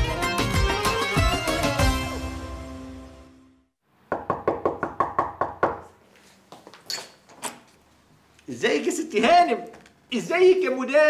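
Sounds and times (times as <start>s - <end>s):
knuckles knocking on a door: 4.1s - 5.8s.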